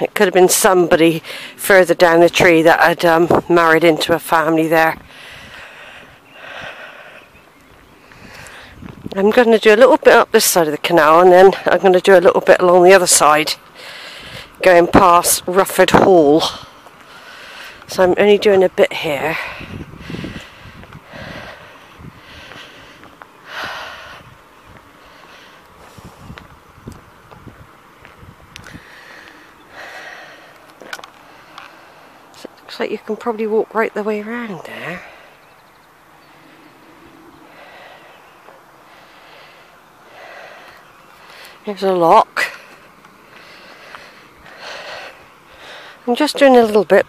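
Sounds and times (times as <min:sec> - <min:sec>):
person breathing while walking: 0:01.2 - 0:01.6, 0:05.0 - 0:09.0, 0:13.6 - 0:14.6, 0:16.4 - 0:17.9, 0:19.3 - 0:26.6, 0:28.0 - 0:32.4, 0:36.3 - 0:41.7, 0:42.4 - 0:46.1
person speaking: 0:32.4 - 0:35.3.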